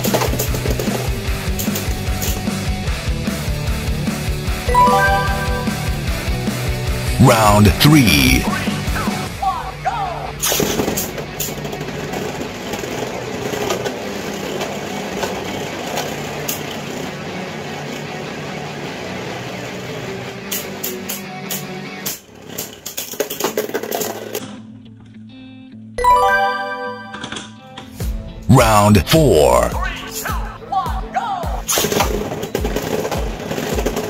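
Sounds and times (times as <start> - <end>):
background music: 4.7 - 6.2, 26.0 - 27.9, 28.5 - 30.1.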